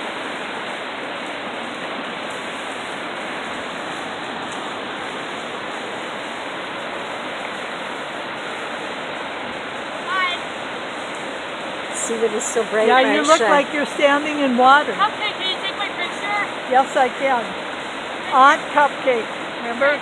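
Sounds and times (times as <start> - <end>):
rushing white-water rapids: 0.0 - 20.0.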